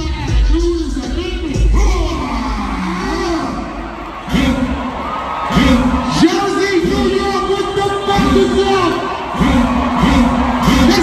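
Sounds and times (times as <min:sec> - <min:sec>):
bass-heavy music: 0:00.0 - 0:06.2
crowd cheering: 0:00.0 - 0:11.0.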